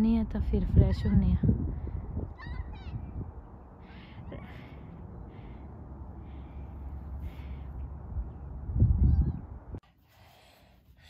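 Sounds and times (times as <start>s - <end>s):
steady low rumble: 0.0s - 10.3s.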